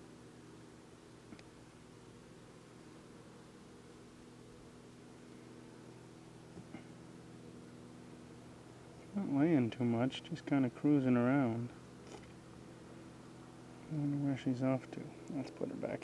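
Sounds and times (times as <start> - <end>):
honeybees humming: 0.0 - 16.0.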